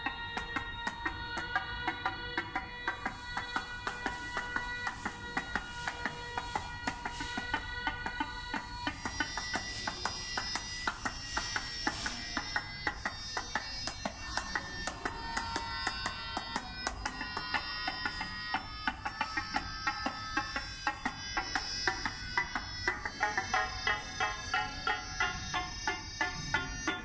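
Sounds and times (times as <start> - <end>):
synthesized pitched notes: 8.7 - 27.0.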